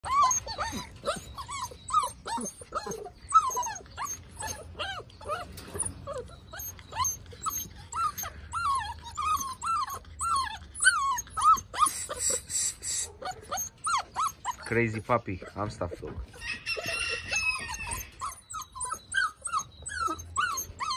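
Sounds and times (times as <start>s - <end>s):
puppies whining: 0.0s - 20.9s.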